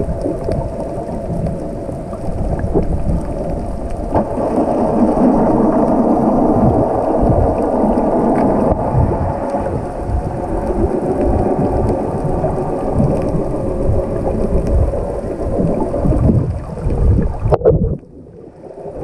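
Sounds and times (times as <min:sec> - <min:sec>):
underwater rushing rumble: 0:00.0 - 0:19.0
low underwater thumps: 0:06.4 - 0:10.3, 0:15.6 - 0:18.2.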